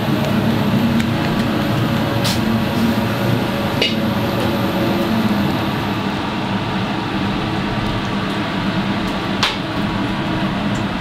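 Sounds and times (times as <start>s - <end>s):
exhaust hood fan running: 0.0s - 11.0s
low hum: 0.0s - 11.0s.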